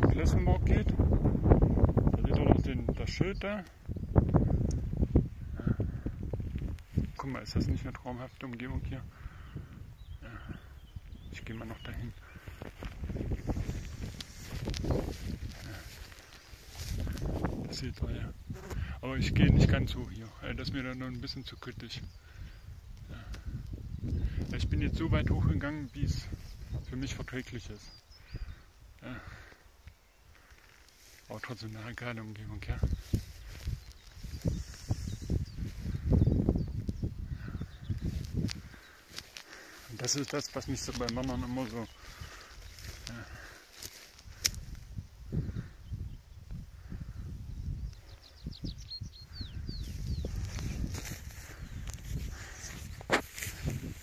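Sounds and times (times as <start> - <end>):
faint outdoor background noise: 0.0 - 54.0
wind rumbling on microphone: 0.0 - 54.0.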